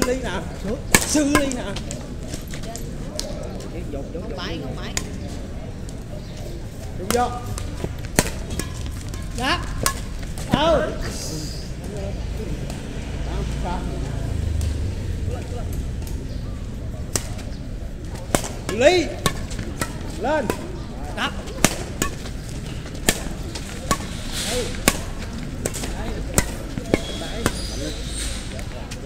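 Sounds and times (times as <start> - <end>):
racket hitting shuttlecock: 0.0 - 1.8, 7.1 - 10.6, 17.1 - 20.9, 21.5 - 28.4.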